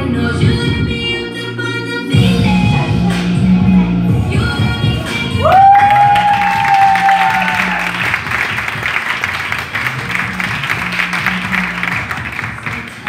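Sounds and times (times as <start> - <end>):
background music with bass line: 0.0 - 13.0
audience clapping: 5.5 - 13.0.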